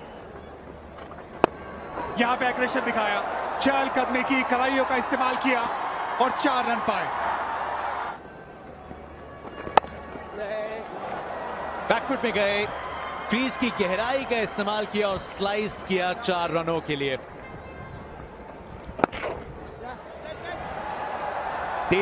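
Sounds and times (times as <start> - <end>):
cricket bat striking ball: 1.3 - 1.7, 9.5 - 10.1, 18.9 - 19.4.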